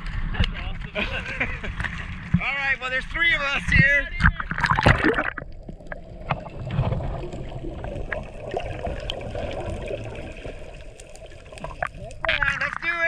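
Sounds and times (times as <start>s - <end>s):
underwater rumble: 0.0s - 13.0s
small clicks underwater: 1.7s - 2.4s, 3.7s - 13.0s.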